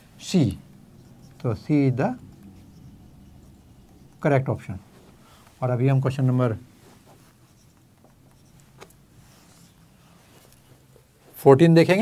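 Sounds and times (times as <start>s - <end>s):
marker scratching on whiteboard: 0.3s - 11.1s.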